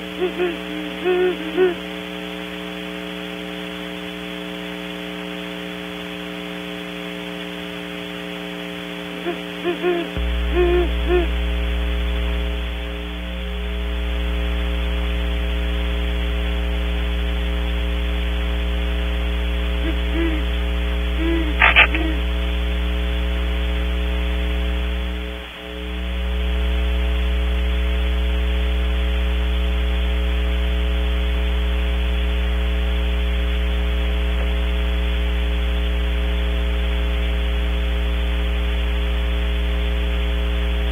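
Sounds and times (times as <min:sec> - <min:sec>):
faint low owl hoots: 0:00.0 - 0:01.9, 0:09.2 - 0:11.4, 0:19.8 - 0:22.4
electrical mains hum: 0:00.0 - 0:40.9.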